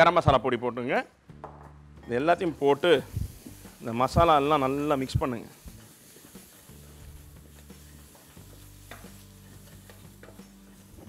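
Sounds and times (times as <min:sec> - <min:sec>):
spices sizzling: 0:02.0 - 0:11.0
wooden spatula scraping pot: 0:05.7 - 0:10.9.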